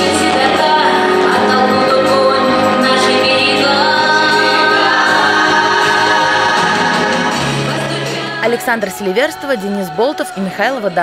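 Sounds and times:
choir singing long notes: 0.0s - 11.0s.

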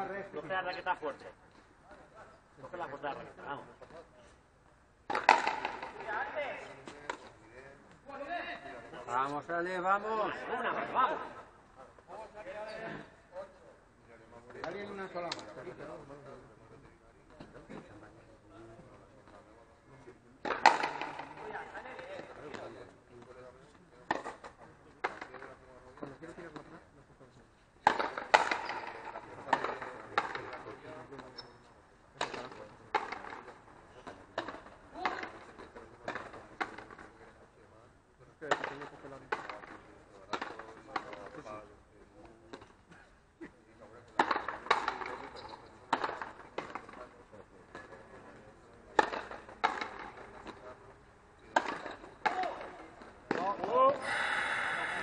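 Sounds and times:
ball smacking against wall: 5.1s - 6.1s
ball cracking off rackets: 5.1s - 6.2s, 20.4s - 21.5s, 27.8s - 30.6s, 49.0s - 50.6s.

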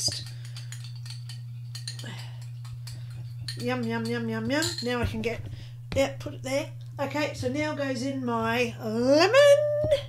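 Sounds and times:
spoon clicking against glass: 0.0s - 5.0s
steady low hum: 0.0s - 10.0s.

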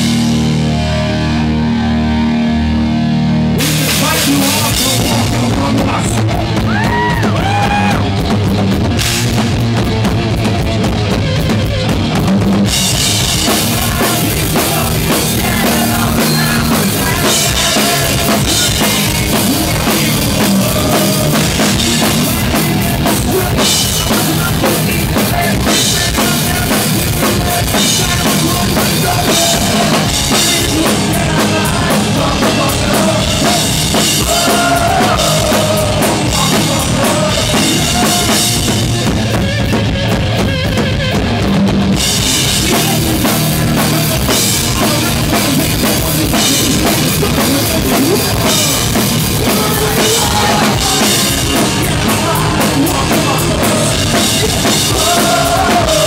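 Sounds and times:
drum kit: 0.0s - 56.0s
punk rock band playing live: 0.0s - 56.0s
person singing: 3.6s - 8.0s, 13.2s - 39.2s, 42.3s - 56.0s.

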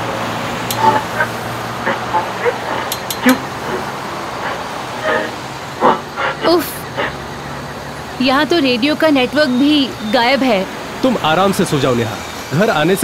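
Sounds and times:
car engine drone: 0.0s - 13.0s
car radio static: 0.0s - 13.0s.

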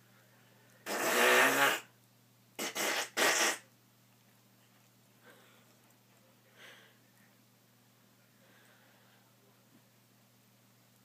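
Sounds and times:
man making fake fart noise: 0.8s - 1.9s, 2.6s - 3.6s.

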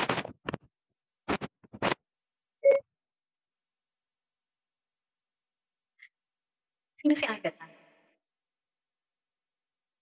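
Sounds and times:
short electronic beep: 2.6s - 2.8s.

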